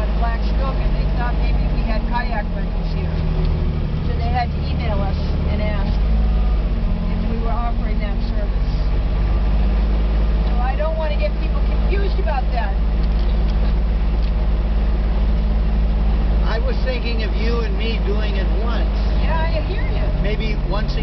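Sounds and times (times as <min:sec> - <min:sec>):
vehicle engine droning: 0:00.0 - 0:21.0.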